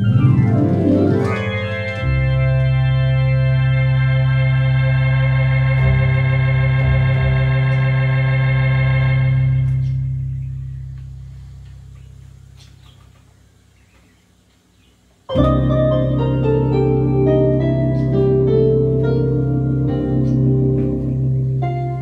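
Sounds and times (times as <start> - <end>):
electronic organ playing: 0.0 - 11.2, 15.3 - 22.0.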